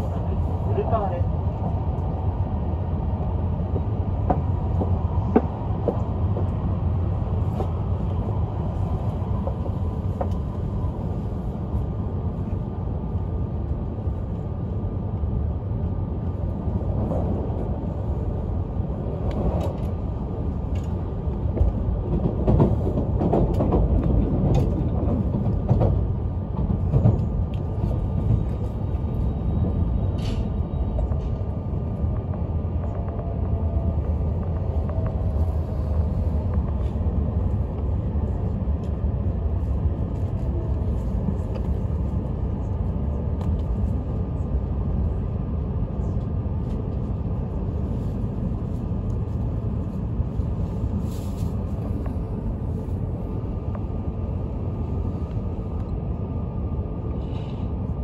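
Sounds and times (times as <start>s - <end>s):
train cabin rumble: 0.0s - 58.0s.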